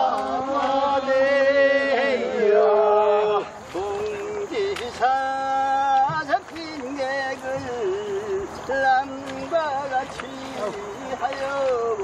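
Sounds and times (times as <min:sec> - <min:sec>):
person singing folk song: 0:00.0 - 0:12.0.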